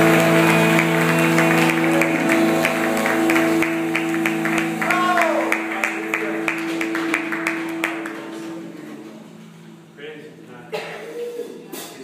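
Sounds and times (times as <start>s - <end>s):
rhythmic hand clapping: 0.0s - 9.0s
band holding a note: 0.0s - 9.9s.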